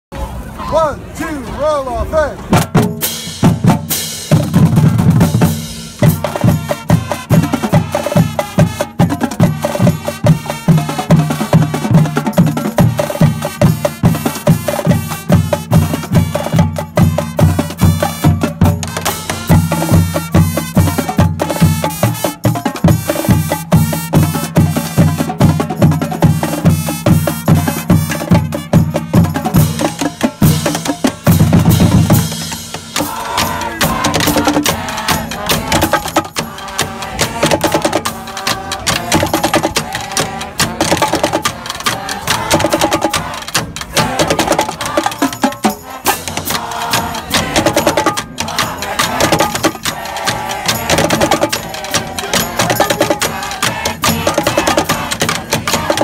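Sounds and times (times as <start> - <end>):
snare and bass drums cadence: 2.4 - 56.0
brass playing rhythmic tune: 2.6 - 56.0.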